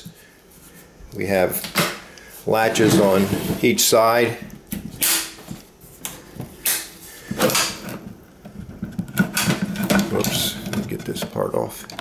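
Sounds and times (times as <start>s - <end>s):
wood knocks and scrapes: 2.7s - 3.8s.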